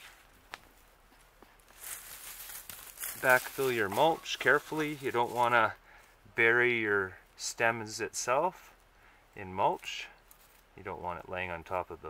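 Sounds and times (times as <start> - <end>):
wood-chip mulch rustling: 0.0 - 5.8, 9.6 - 11.4.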